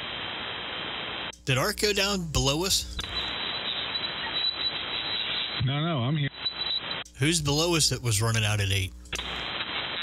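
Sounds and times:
radio receiver static hiss: 0:00.0 - 0:10.0.

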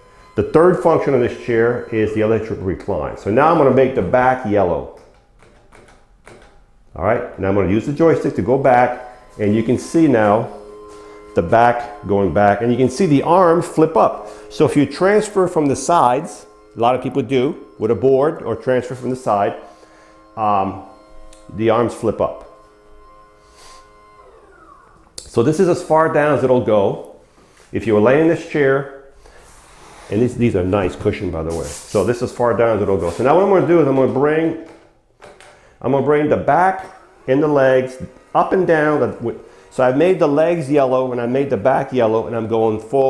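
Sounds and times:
wheelchair recline actuator whining: 0:00.0 - 0:43.0
wheelchair joystick clicks and taps: 0:05.0 - 0:06.6.

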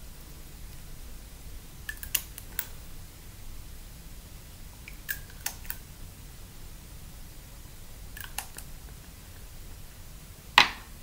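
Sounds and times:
small sharp clicks of pieces: 0:01.9 - 0:02.8, 0:04.9 - 0:05.8, 0:08.1 - 0:08.7.

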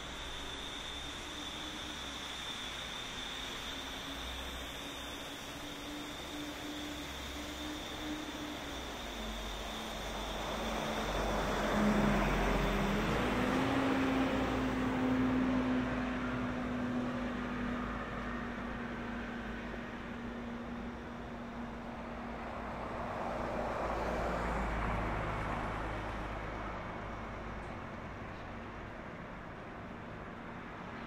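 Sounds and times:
engine hum: 0:00.0 - 0:31.0
vehicles passing: 0:09.2 - 0:31.0.

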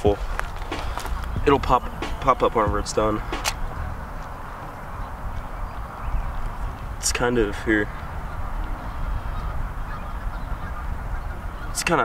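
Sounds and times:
wind rumbling on microphone: 0:00.0 - 0:12.0
faint honking calls: 0:00.6 - 0:12.0.

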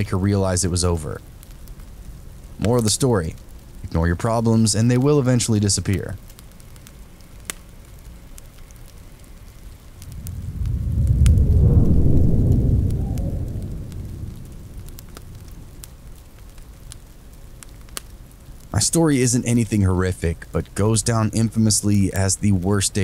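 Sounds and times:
fire crackling: 0:00.0 - 0:23.0
steady rain: 0:00.0 - 0:23.0
long low rumble: 0:09.9 - 0:16.2.

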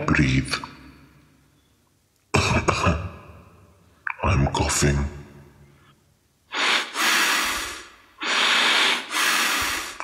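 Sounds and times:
person breathing heavily: 0:06.5 - 0:10.0.

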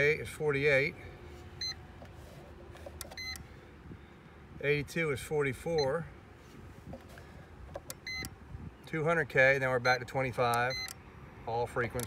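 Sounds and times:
short electronic beep: 0:08.0 - 0:08.3.

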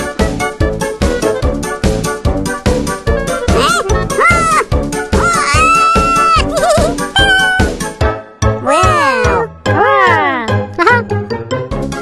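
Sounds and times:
children's cartoon music: 0:00.0 - 0:12.0
cat-like cartoon voice: 0:03.5 - 0:07.7, 0:08.6 - 0:11.0.

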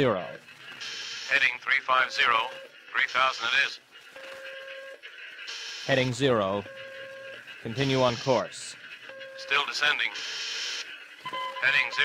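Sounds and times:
radio static hiss: 0:00.0 - 0:12.0
person speaking: 0:07.6 - 0:08.8, 0:11.6 - 0:12.0
radar beep: 0:09.0 - 0:12.0.

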